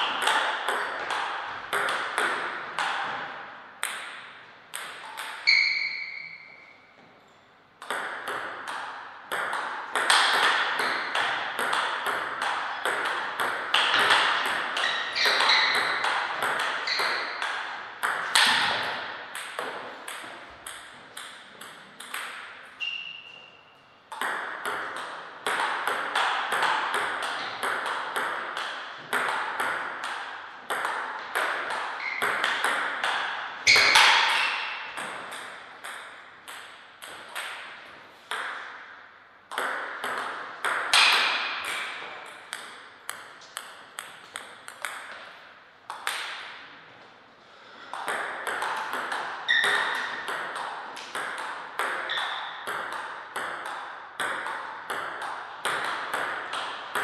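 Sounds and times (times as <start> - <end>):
table tennis ball hitting: 0.0 - 7.1, 7.8 - 23.2, 24.1 - 46.7, 47.5 - 57.0.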